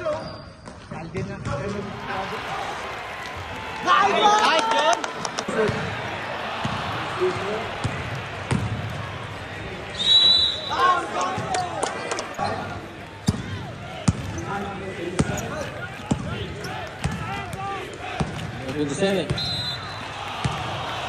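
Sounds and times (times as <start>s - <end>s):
players' voices: 0.0s - 21.0s
basketball bouncing on gym court: 7.8s - 9.0s, 13.2s - 14.4s, 15.1s - 16.4s, 20.4s - 20.7s.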